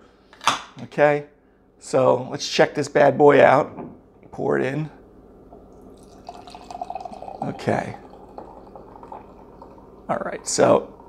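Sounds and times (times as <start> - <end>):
beer fizzing in a glass: 5.8 - 11.0.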